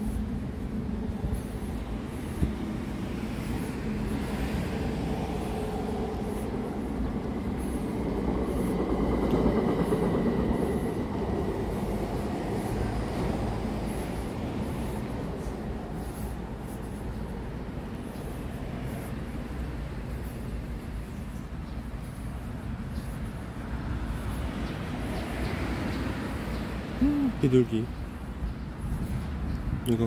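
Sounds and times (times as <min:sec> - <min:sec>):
train rumbling on viaduct: 0:00.0 - 0:20.0.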